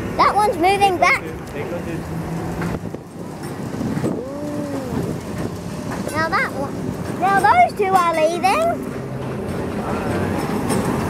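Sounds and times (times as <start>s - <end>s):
electric tram rumbling on rails: 0.0s - 11.0s.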